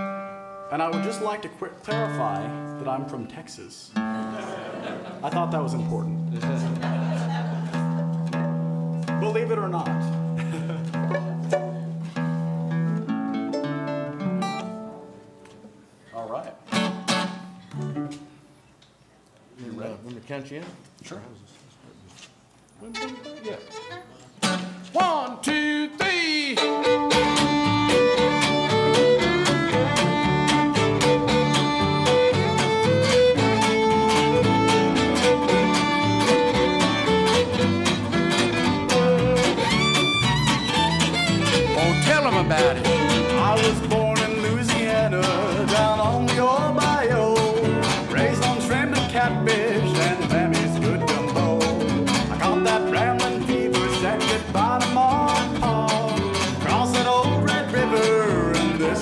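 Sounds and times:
guitar chopped rhythm: 0.0s - 3.0s, 5.2s - 15.7s, 16.6s - 18.3s, 23.0s - 59.0s
short fiddle notes: 22.8s - 25.0s, 26.4s - 46.6s.

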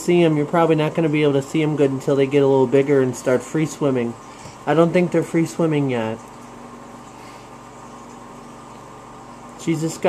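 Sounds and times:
aquarium equipment humming: 0.0s - 10.0s.

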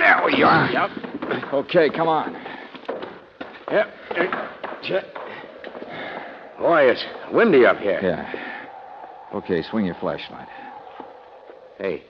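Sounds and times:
faint steady rushing noise: 3.2s - 12.0s
man speaking: 6.6s - 8.4s, 9.3s - 10.5s.

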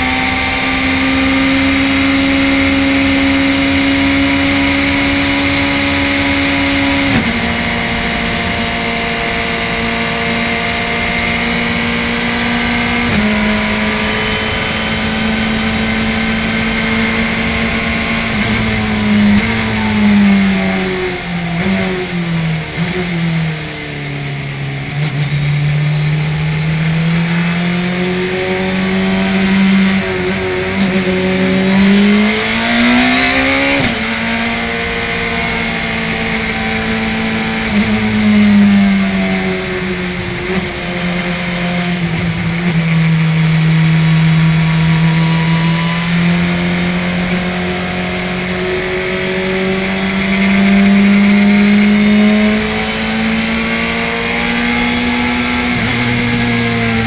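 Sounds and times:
race car engine at high revs: 0.0s - 57.0s
wind and road noise: 0.0s - 57.0s.

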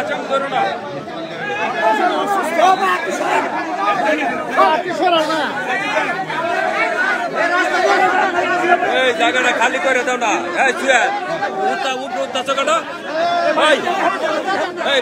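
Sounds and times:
crowd chatter: 0.0s - 15.0s.

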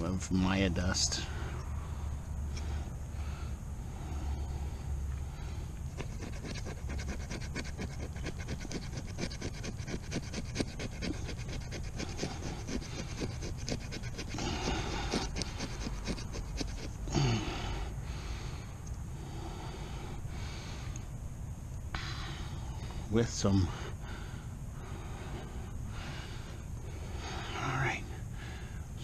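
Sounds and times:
knife scraping wood stick: 5.9s - 17.0s.

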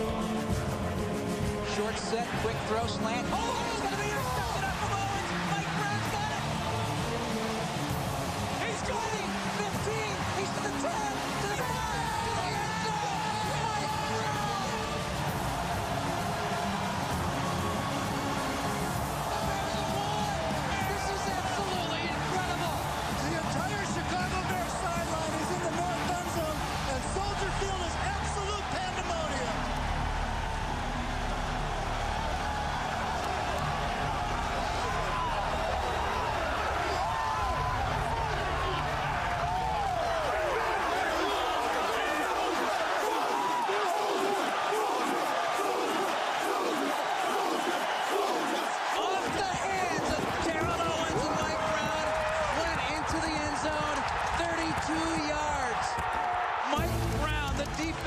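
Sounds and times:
background music: 0.0s - 58.0s
crowd cheering and shouting: 0.0s - 58.0s.

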